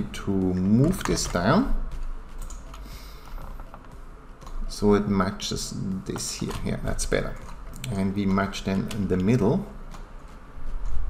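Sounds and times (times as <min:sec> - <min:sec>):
low steady hum: 0:00.0 - 0:11.0
keyboard and mouse clicks: 0:00.8 - 0:04.6, 0:06.1 - 0:10.1.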